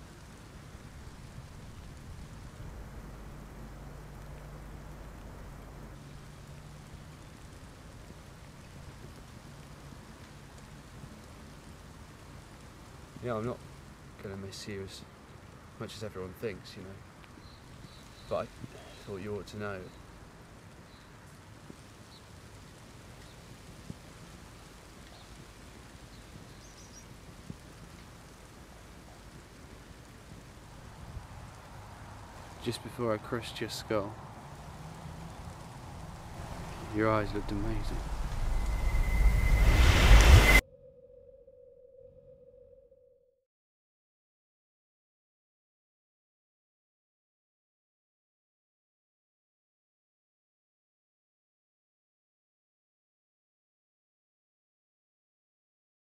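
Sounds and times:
low unsteady rumble: 0.0s - 8.8s, 35.5s - 40.6s
low steady hum: 0.0s - 13.0s
steady rain falling: 0.0s - 40.6s
even hiss: 23.2s - 40.6s
faint high chirps: 36.9s - 43.3s.

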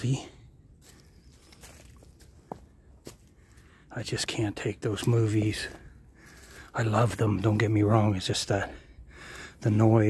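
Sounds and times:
faint footsteps in woods: 0.0s - 10.0s.

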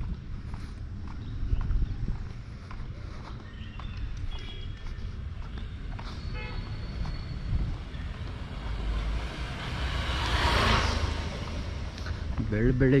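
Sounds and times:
low traffic rumble: 0.0s - 13.0s
vehicle passing: 5.3s - 13.0s.

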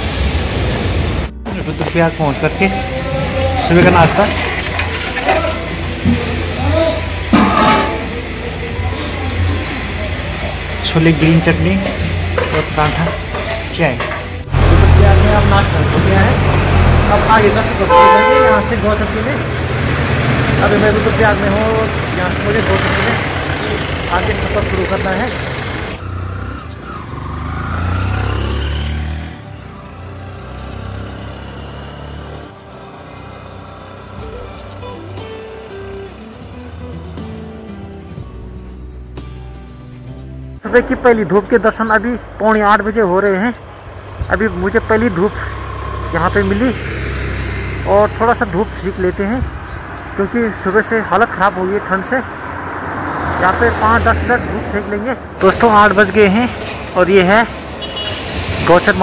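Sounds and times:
background music: 1.0s - 52.4s
indistinct voices: 1.4s - 19.5s
kitchen sounds: 1.5s - 15.3s
vehicle engine accelerating: 14.4s - 18.0s, 18.6s - 39.6s, 41.0s - 59.0s.

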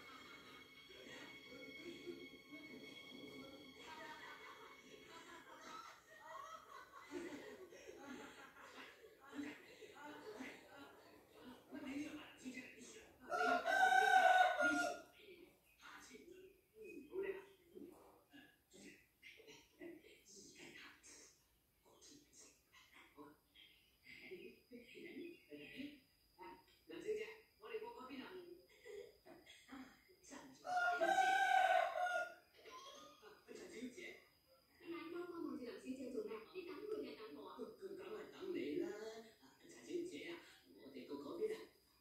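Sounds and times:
rooster crowing: 13.3s - 15.1s, 30.6s - 32.5s.

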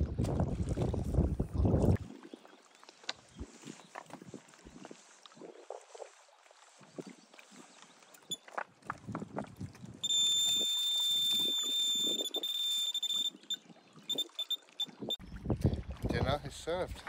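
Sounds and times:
fishing bite alarm beeping: 10.0s - 15.2s.

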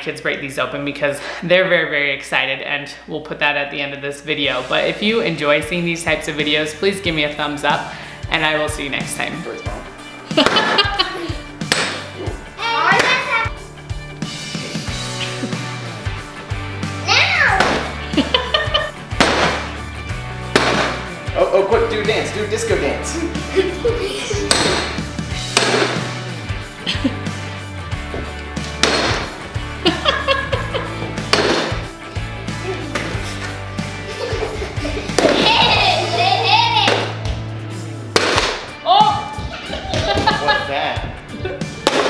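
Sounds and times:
background music with bass: 4.3s - 42.0s
bat hitting pinata: 10.3s - 11.0s, 11.6s - 12.1s, 12.9s - 13.3s, 17.4s - 18.0s, 19.1s - 19.8s, 20.5s - 21.2s, 24.4s - 26.2s, 28.6s - 29.4s, 31.2s - 31.9s, 35.1s - 36.1s, 36.8s - 37.4s, 38.1s - 39.2s, 41.8s - 42.0s.

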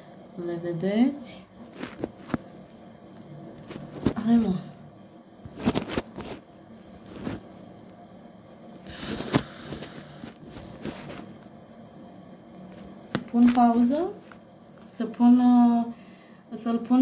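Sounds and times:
rustling scrape: 1.6s - 4.8s, 5.4s - 7.7s, 8.6s - 11.5s, 12.6s - 14.5s.

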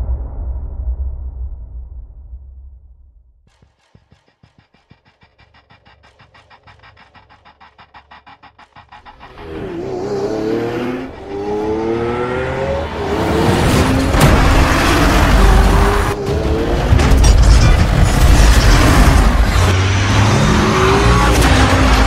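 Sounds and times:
sports car engine revving: 8.6s - 16.9s.

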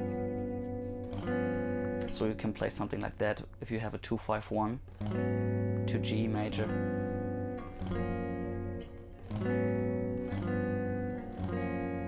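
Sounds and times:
clean electric guitar chords: 0.0s - 3.7s, 4.9s - 12.0s.

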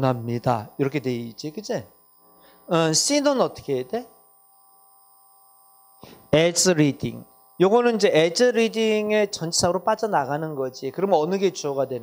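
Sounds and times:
faint electrical hum: 0.0s - 12.0s
thin constant tones: 0.0s - 12.0s.

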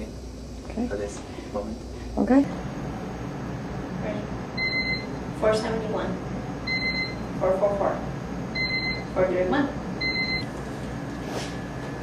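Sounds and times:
low equipment hum: 0.0s - 12.0s.

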